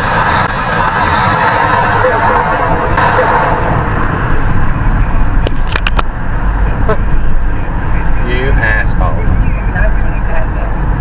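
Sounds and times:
road and engine rumble: 0.0 - 11.0.

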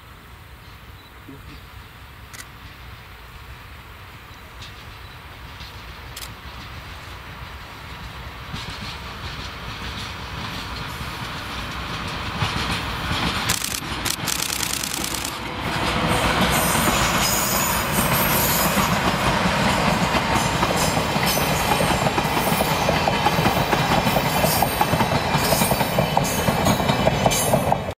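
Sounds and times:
diesel locomotives running: 0.0 - 28.0
wheels clacking over rail joints: 8.0 - 27.9.

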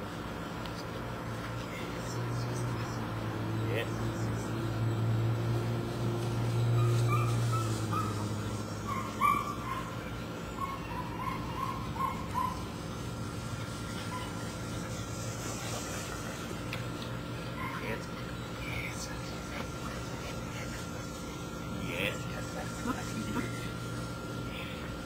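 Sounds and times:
puppy whimpering and yipping: 6.7 - 8.2, 8.8 - 12.6.

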